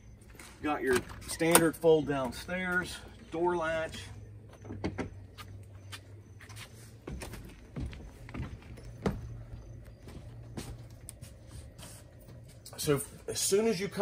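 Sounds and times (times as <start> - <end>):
faint low hum: 0.0 - 14.0.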